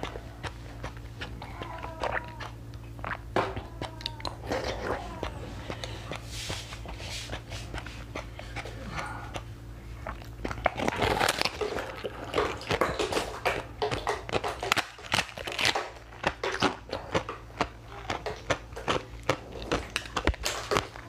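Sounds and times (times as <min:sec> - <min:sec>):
crunching and chewing ice: 0:00.0 - 0:21.0.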